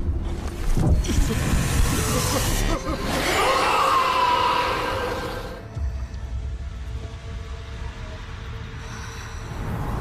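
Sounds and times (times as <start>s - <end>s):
tense film music: 0.0s - 10.0s.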